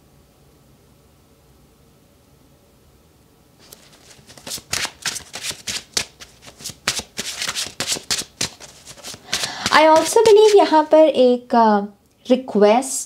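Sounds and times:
cards being shuffled by hand: 0:03.6 - 0:10.9.

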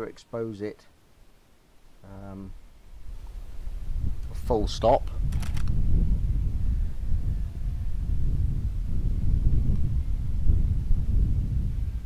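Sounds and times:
wind buffeting microphone: 0:02.9 - 0:12.0.

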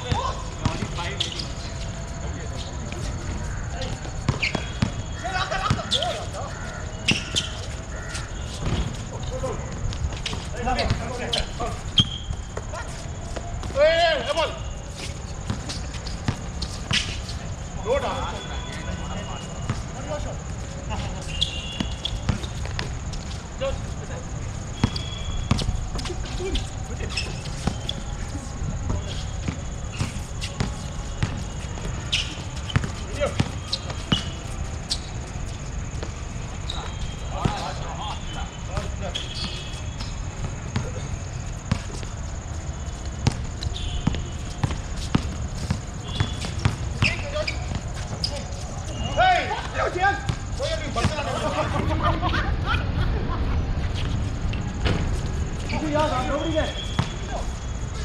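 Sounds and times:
players' voices: 0:00.0 - 0:58.0
basketball bouncing on hard court: 0:44.0 - 0:47.9, 0:56.8 - 0:57.2.

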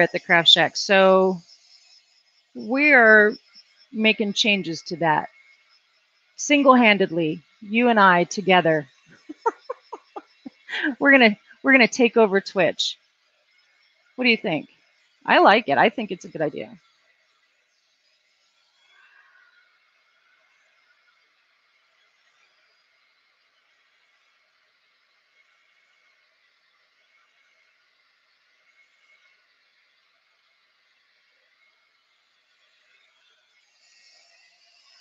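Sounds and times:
heat gun whirring: 0:14.8 - 0:35.0.

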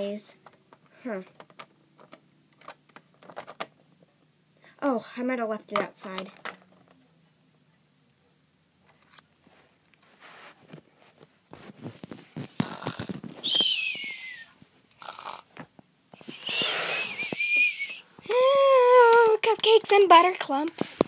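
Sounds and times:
breathy high whistling: 0:13.4 - 0:15.3, 0:16.2 - 0:18.7.

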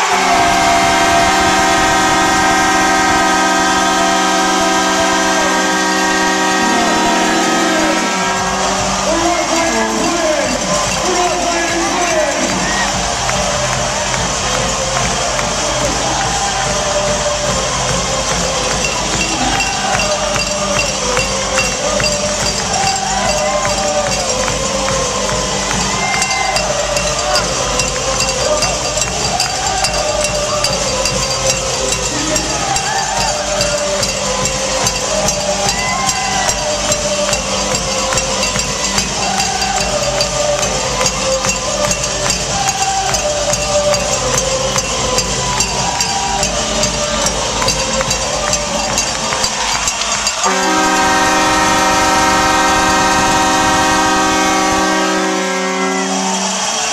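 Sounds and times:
crowd voices talking and calling: 0:00.0 - 0:56.9
multi-tone arena horn: 0:00.0 - 0:56.9.

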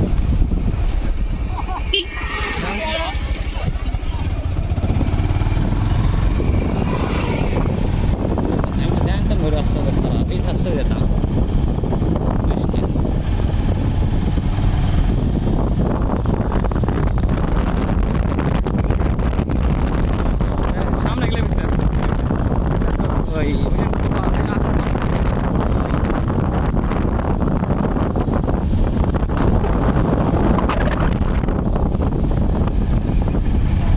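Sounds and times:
engine and road rumble: 0:00.0 - 0:33.9.

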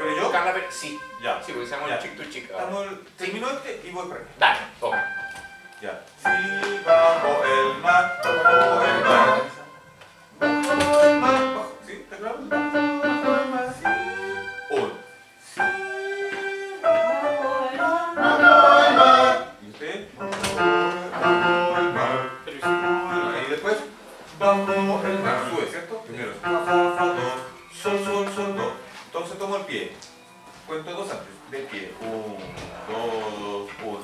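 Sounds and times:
electronic keyboard piano sound: 0:00.0 - 0:02.5, 0:04.7 - 0:28.9
man singing: 0:06.2 - 0:09.6, 0:12.8 - 0:19.6, 0:20.2 - 0:23.5, 0:24.4 - 0:25.5.

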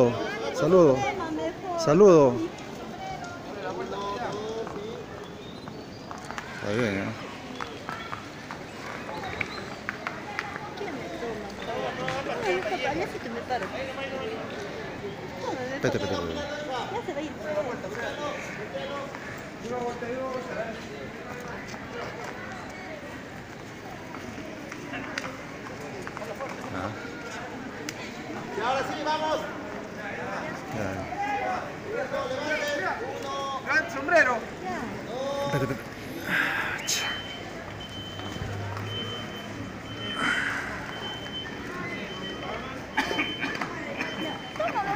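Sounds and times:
crowd talking: 0:00.0 - 0:44.9
street noise: 0:00.0 - 0:44.9.

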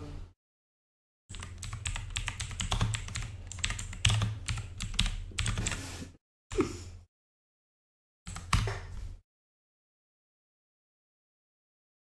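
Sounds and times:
fast typing on keyboard: 0:01.3 - 0:05.8, 0:08.3 - 0:09.0.

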